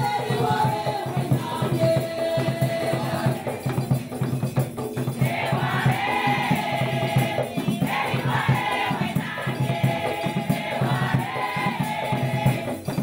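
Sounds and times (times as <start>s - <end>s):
women's choir singing: 0.0s - 4.1s, 5.2s - 13.0s
rhythmic percussion beat: 0.0s - 13.0s.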